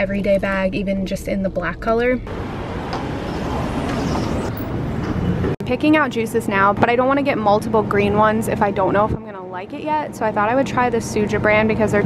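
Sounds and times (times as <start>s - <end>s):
rushing outdoor background noise: 2.2s - 12.0s.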